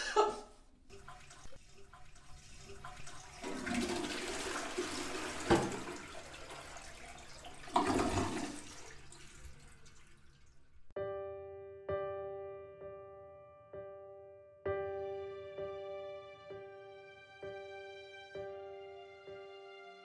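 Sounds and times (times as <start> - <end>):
toilet flushing: 0.8 - 10.9.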